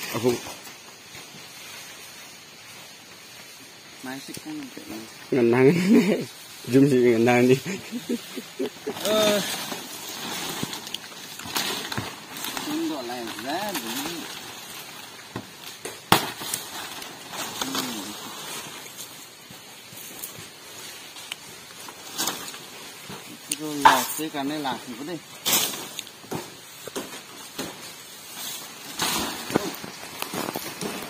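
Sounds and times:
palm fronds rustling: 0.0s - 31.0s
people talking: 8.8s - 9.6s, 12.6s - 14.3s, 17.6s - 18.2s, 23.4s - 25.2s
machete chopping stalks: 15.3s - 16.7s.

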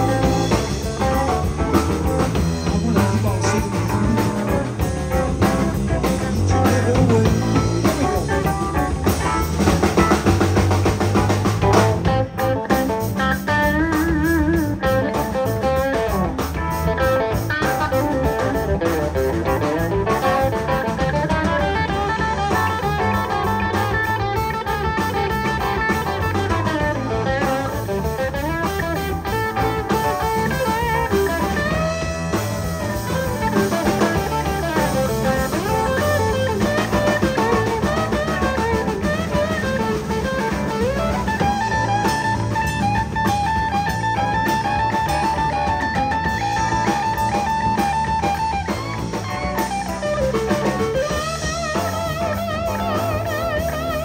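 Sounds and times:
bass guitar: 0.0s - 54.0s
drum kit: 0.0s - 54.0s
electric guitar bending notes: 0.0s - 54.0s.

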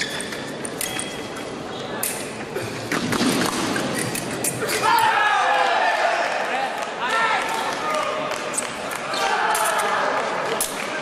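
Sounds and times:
shoes squeaking: 0.0s - 2.0s.

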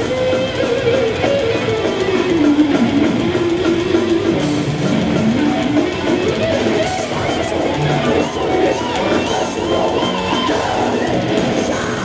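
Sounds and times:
live death metal band: 0.0s - 12.0s.

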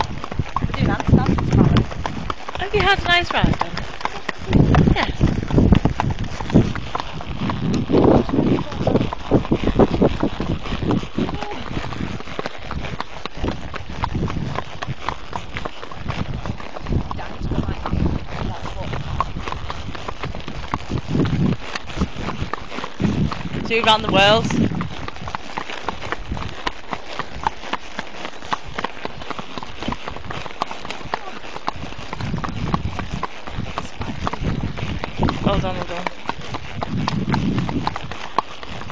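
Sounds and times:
horse hoofbeats: 0.0s - 38.9s.

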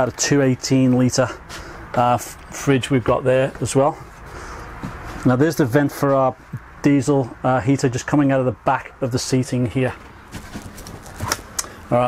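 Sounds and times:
footsteps: 0.9s - 2.3s, 3.0s - 6.6s, 9.9s - 11.6s.

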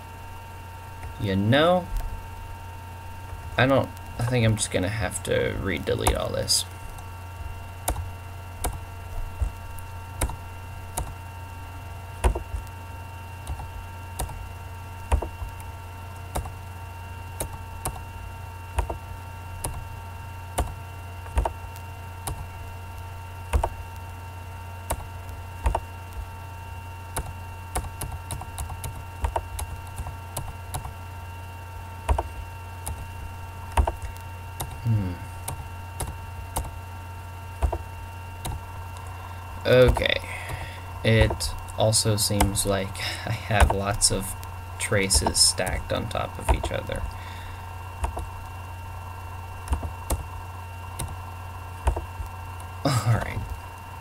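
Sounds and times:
faint whine tones: 0.0s - 54.0s
low electrical hum: 0.0s - 54.0s.

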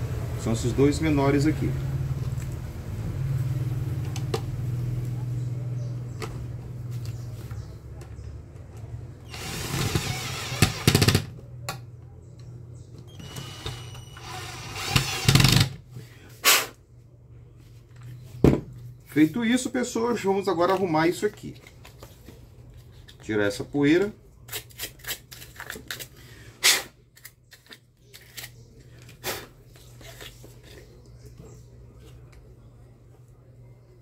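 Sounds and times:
cordless drill driving screws: 9.3s - 11.2s, 13.2s - 15.7s.

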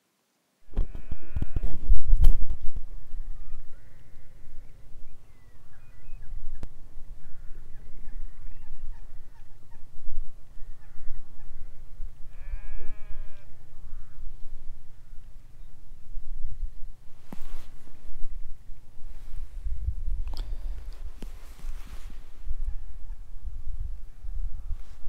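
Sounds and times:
wind rumbling on microphone: 0.6s - 25.0s
sheep bleating: 12.3s - 13.5s.

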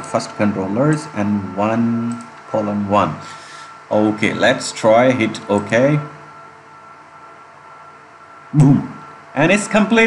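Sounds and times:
faint hum: 0.0s - 10.0s
steady background hiss: 0.0s - 10.0s.

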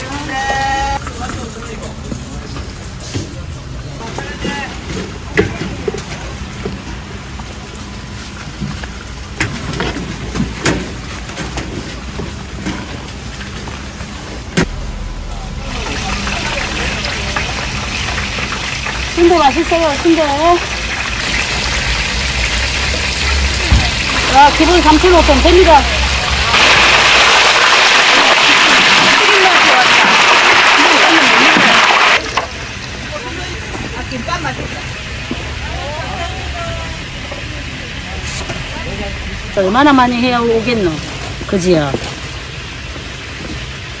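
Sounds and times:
hot oil sizzling: 3.7s - 44.0s
steady low hum: 14.5s - 18.4s.

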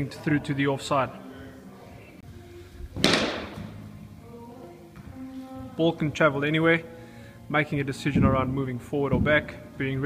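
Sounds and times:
cricket bat striking ball: 3.0s - 3.7s.

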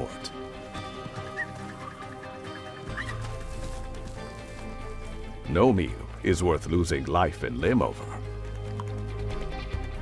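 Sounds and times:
high animal call: 1.3s - 3.4s.

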